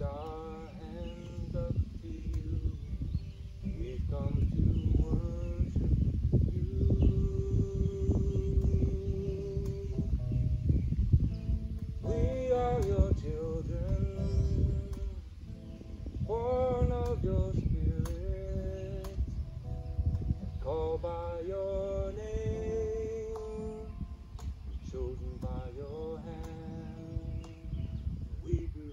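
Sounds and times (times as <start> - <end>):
man singing: 0.0 - 10.4, 12.0 - 15.4, 16.2 - 19.6, 20.5 - 24.0, 24.8 - 28.9
acoustic guitar strumming: 0.0 - 28.9.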